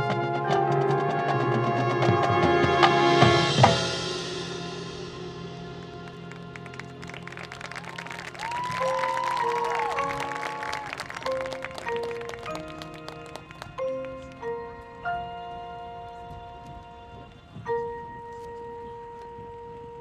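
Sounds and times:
audience applause: 0:06.0 - 0:14.3.

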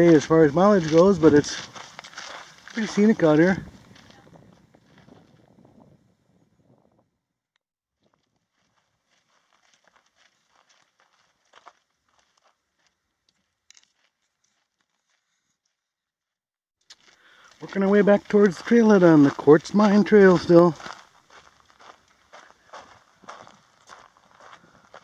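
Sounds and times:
footsteps on gravel: 0:00.0 - 0:05.5, 0:08.1 - 0:15.3, 0:16.9 - 0:25.0.

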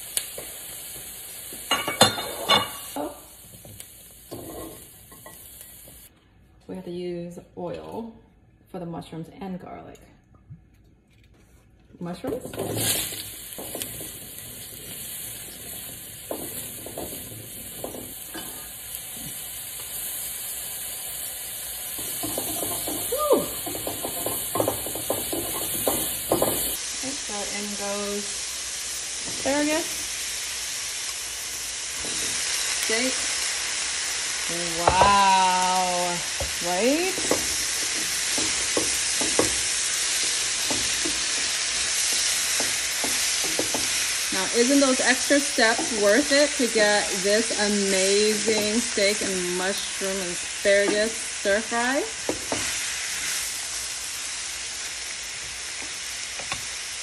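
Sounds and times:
mushrooms sizzling in hot oil: 0:00.0 - 0:06.1, 0:12.0 - 0:57.0
metal tongs scraping a pan: 0:12.2 - 0:18.8.

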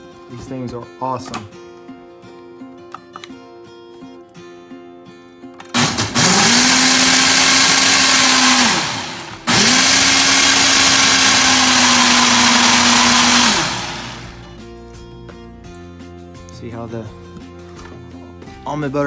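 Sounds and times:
blender motor running: 0:05.8 - 0:14.4.

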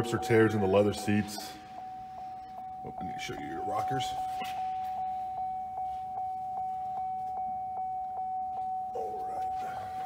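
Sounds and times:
car warning chime: 0:00.0 - 0:10.0.

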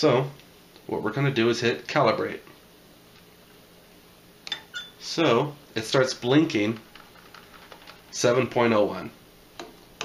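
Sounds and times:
glass electrode clinking on glass: 0:04.5 - 0:05.0.

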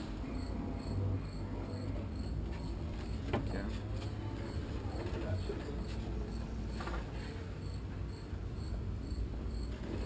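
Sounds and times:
cricket chirping: 0:00.2 - 0:10.0.

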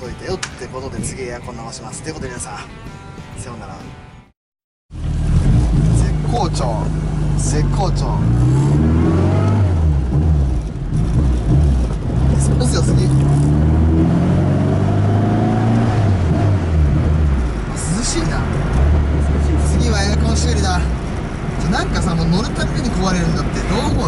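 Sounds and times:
car engine revving: 0:04.9 - 0:24.0.

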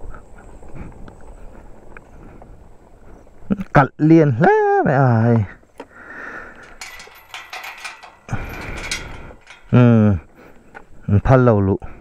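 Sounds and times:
chain and padlock rattling: 0:06.5 - 0:10.2.

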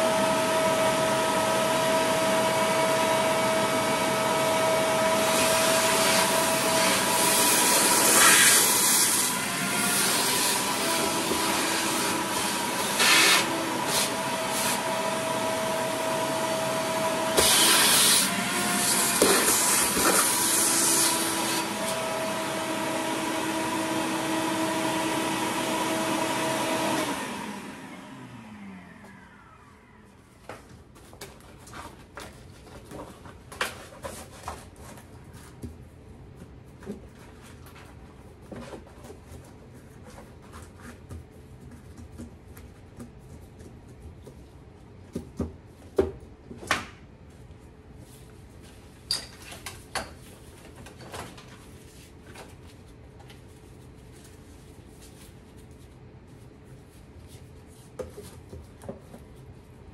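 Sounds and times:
vacuum motor winding down: 0:00.0 - 0:30.2
vacuum cleaner running: 0:00.0 - 0:30.6.

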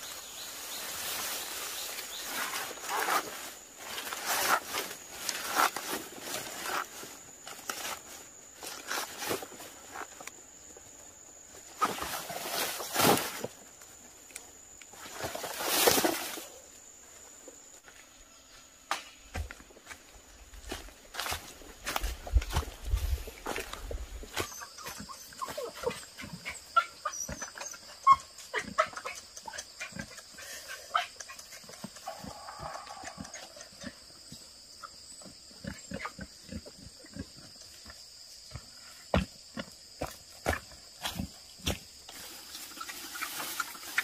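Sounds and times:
high insect drone: 0:00.0 - 0:44.0
footsteps and knocks on ground: 0:18.9 - 0:25.1.

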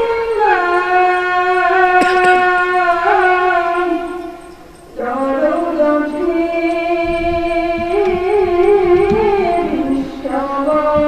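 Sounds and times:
boy singing into a microphone: 0:00.0 - 0:04.4, 0:05.0 - 0:11.0.

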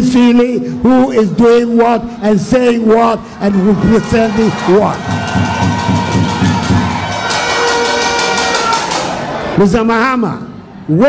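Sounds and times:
crowd cheering and shouting: 0:02.6 - 0:09.8.

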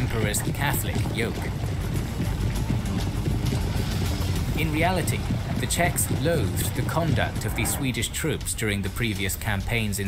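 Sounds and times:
low rumbling background score: 0:00.0 - 0:10.0.

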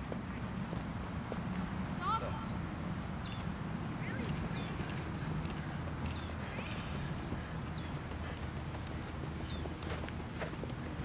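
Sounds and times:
bird chirping: 0:03.2 - 0:08.1, 0:08.9 - 0:09.9
rapid footsteps on grass: 0:04.2 - 0:11.0.

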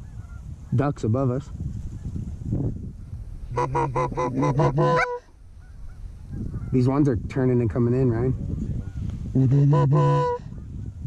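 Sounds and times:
goose call clucks: 0:03.6 - 0:06.0, 0:09.4 - 0:10.5.

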